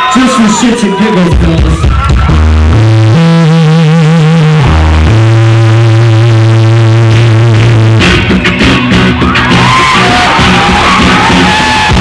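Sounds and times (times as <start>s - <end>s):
synthesizer held notes: 2.2s - 12.0s.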